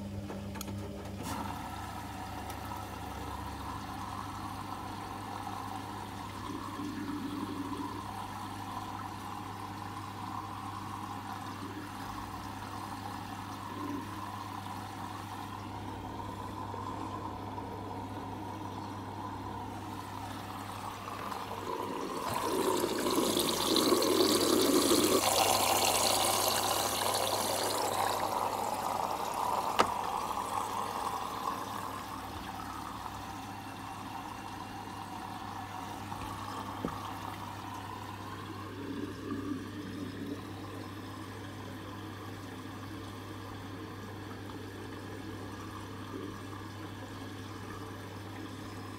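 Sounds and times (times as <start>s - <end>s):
washing machine low hum: 0.0s - 48.9s
water rushing into washing machine: 0.0s - 48.9s.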